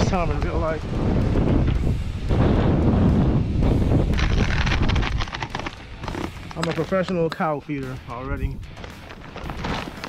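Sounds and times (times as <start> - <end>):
wind buffeting microphone: 0.0 - 7.1.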